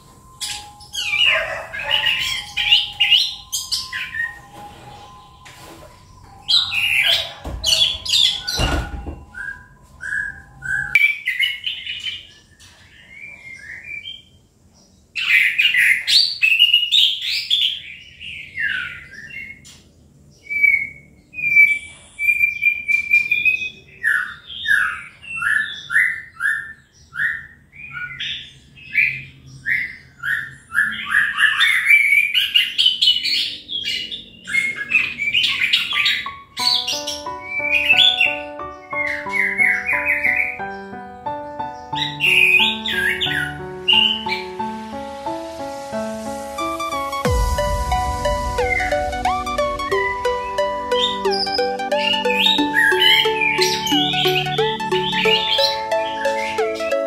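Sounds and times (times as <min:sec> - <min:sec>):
background music: 0:00.0 - 0:10.9, 0:36.2 - 0:57.0
thrush singing: 0:36.6 - 0:57.0.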